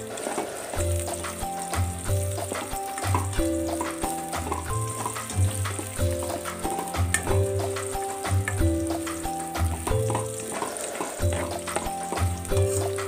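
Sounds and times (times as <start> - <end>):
background music: 0.0 - 13.0
vegetables sizzling in oil: 0.0 - 13.0
wooden spoon clicking on pot: 6.7 - 7.4.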